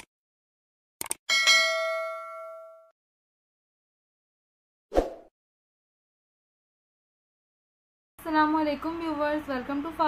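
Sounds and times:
bell ding: 1.3s - 3.0s.

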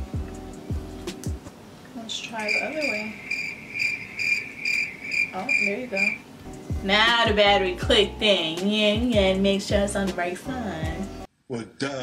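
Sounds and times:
cricket chirping: 2.3s - 6.3s.

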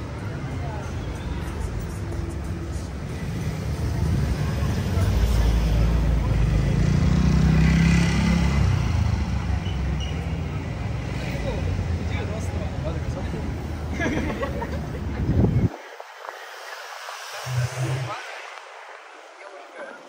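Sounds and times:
street hum: 0.0s - 20.0s
car passing by: 2.8s - 10.0s.

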